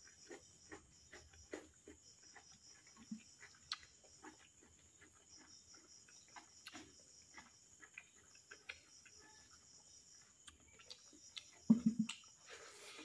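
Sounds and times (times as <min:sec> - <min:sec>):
chewing: 0:00.0 - 0:13.0
fingers eating rice: 0:00.0 - 0:13.0.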